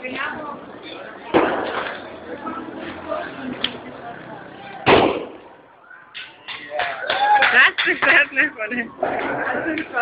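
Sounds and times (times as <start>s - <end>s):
faint crowd voices: 0.0s - 10.0s
loud bang: 4.8s - 5.6s.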